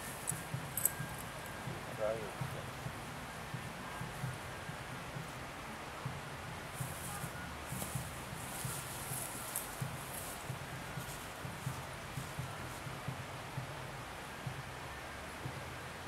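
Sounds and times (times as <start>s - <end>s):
low outdoor rumble: 0.0s - 16.0s
footsteps swishing through grass: 6.7s - 13.2s.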